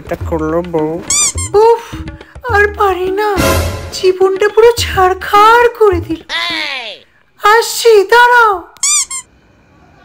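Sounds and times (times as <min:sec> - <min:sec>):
background music: 0:00.0 - 0:07.0
person speaking: 0:00.0 - 0:07.7
short high-pitched squeak: 0:08.8 - 0:09.3.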